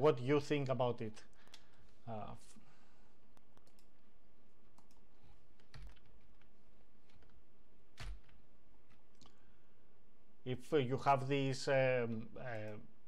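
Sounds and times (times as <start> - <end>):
keyboard and mouse clicks: 3.4 - 4.0, 4.7 - 7.4.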